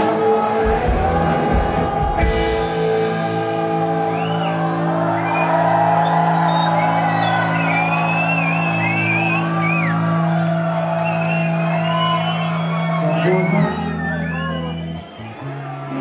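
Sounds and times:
rock band sustained chord: 0.0s - 5.1s
audience whooping and cheering: 0.0s - 16.0s.

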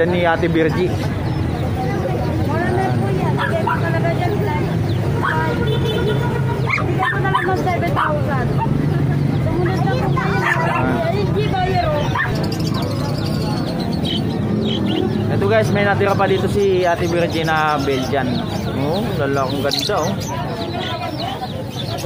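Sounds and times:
crowd talking: 0.0s - 22.0s
dogs barking and yipping: 2.8s - 15.2s.

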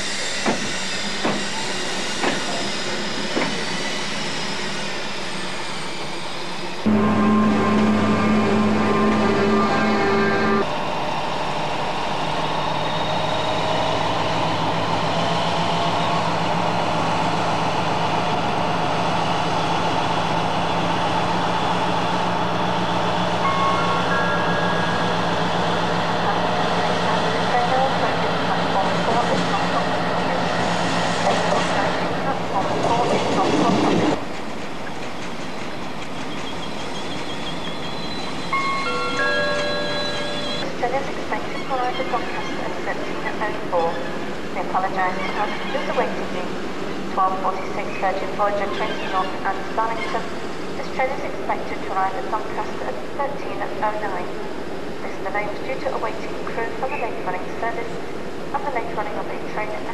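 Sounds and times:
train wheels on rails: 0.0s - 7.0s, 10.6s - 41.2s
diesel locomotive engine drone: 0.0s - 59.9s.

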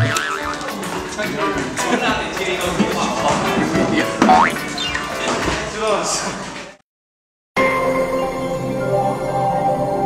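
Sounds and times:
people laughing: 0.4s - 3.3s.

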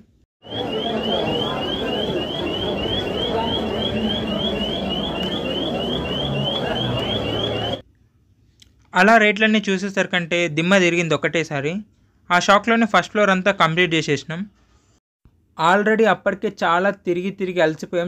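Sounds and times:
crowd hubbub: 0.4s - 7.8s
security alarm chirping: 0.4s - 7.8s.

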